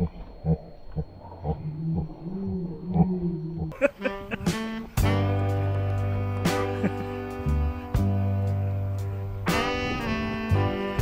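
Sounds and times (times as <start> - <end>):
guitar music: 3.9 - 11.0.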